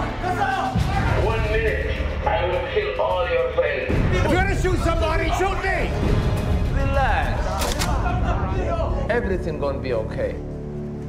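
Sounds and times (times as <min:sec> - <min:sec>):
dramatic trailer music: 0:00.0 - 0:11.0.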